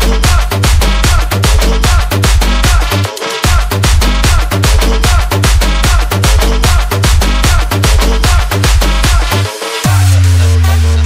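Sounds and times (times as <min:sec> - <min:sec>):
hard trance dance music: 0:00.0 - 0:11.0.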